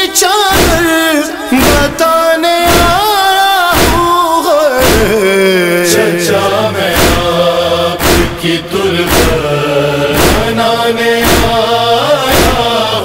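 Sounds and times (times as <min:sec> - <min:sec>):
voices chanting a lament: 0:00.0 - 0:13.0
slow steady beat: 0:02.7 - 0:03.1, 0:03.8 - 0:04.2, 0:04.8 - 0:13.0.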